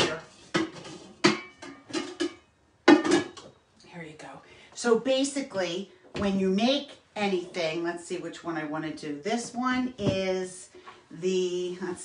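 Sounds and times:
metallic knocks of pots: 0.0s - 3.6s.

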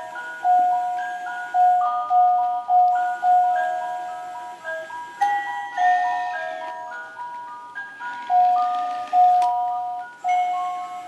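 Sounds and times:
toy playing electronic melody: 0.0s - 11.0s.

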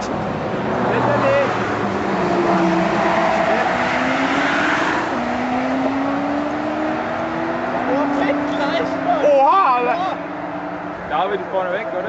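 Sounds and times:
road and wind noise: 0.0s - 12.0s
engine accelerating hard: 0.5s - 12.0s.

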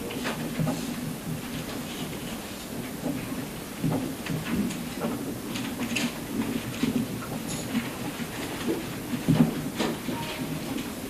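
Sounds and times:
small knocks and rustles: 0.1s - 10.9s.

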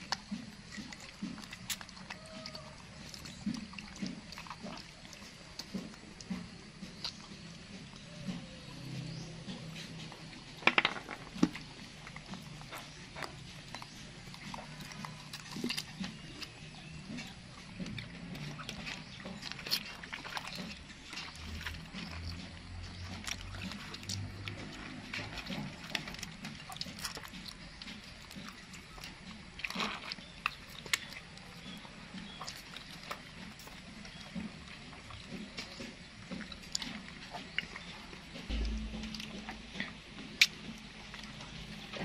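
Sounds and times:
faint low hum: 0.0s - 42.0s
monkey chewing and eating: 0.0s - 42.0s
monkey making soft low sounds: 2.0s - 3.8s.

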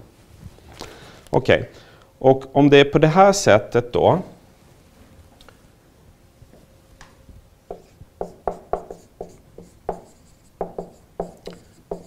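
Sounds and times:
marker writing on whiteboard: 7.7s - 12.0s.

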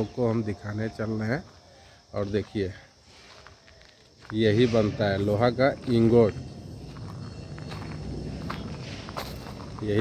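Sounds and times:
footsteps on dirt and grass: 0.0s - 10.0s.

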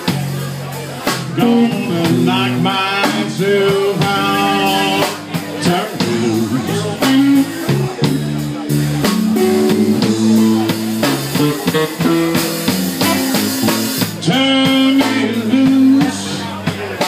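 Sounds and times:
drum kit: 0.0s - 17.0s
electric bass: 0.0s - 17.0s
electric guitar: 0.0s - 17.0s.

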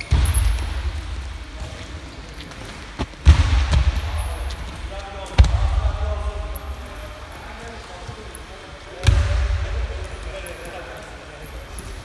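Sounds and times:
indistinct voices in a hall: 0.0s - 12.0s.

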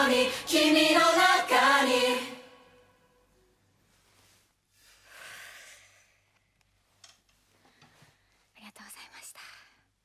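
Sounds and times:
soft whisper near microphone: 8.1s - 10.0s.

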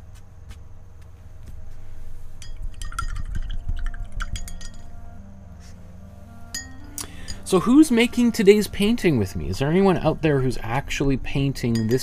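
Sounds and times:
paintbrush clinking against glass jar: 2.4s - 5.0s, 6.5s - 7.7s, 11.6s - 12.0s.

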